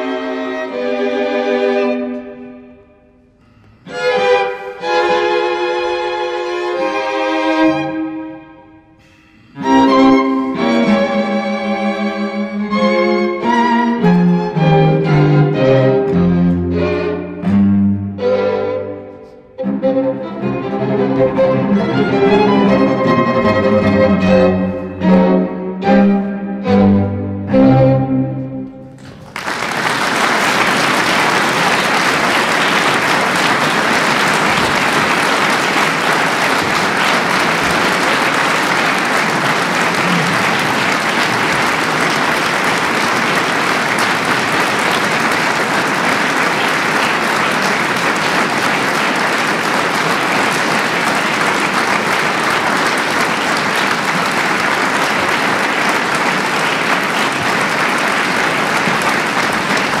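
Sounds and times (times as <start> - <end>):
audience applauding: 28.9 - 60.0.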